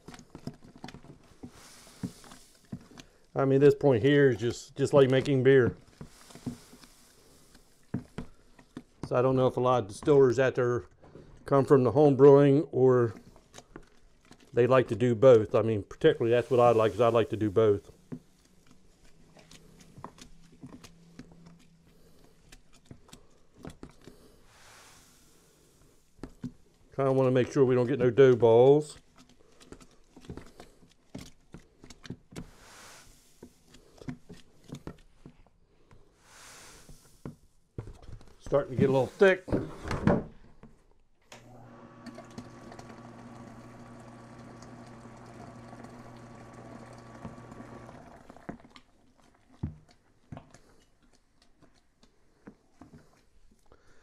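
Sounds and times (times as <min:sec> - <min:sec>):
grain pouring with soft hiss: 0:01.5 - 0:02.6, 0:03.4 - 0:07.7, 0:16.0 - 0:18.0, 0:24.5 - 0:26.1, 0:32.5 - 0:33.4, 0:36.2 - 0:37.3
grain pouring into water: 0:16.2 - 0:17.8.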